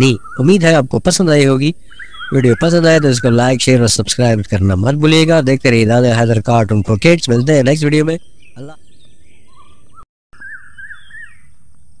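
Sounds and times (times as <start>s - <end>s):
small bird chirping: 0.0s - 12.0s.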